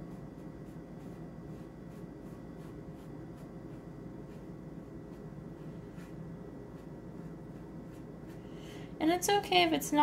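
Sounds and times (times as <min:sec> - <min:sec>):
brush stroking on paper: 0:00.0 - 0:08.5
room hum: 0:00.0 - 0:10.0.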